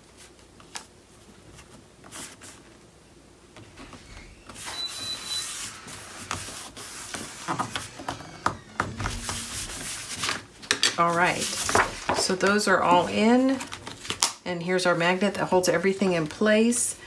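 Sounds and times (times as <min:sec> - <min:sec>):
paper sliding: 0:04.0 - 0:12.1
hands rubbing paper: 0:05.4 - 0:14.1.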